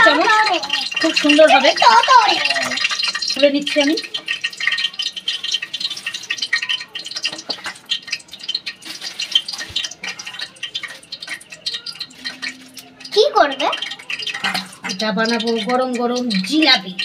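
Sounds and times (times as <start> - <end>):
plastic bag crinkling: 4.4 - 15.8.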